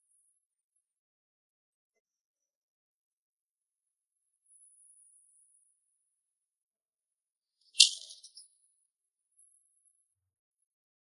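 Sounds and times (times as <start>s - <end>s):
short bright rattle: 7.8s - 8.4s.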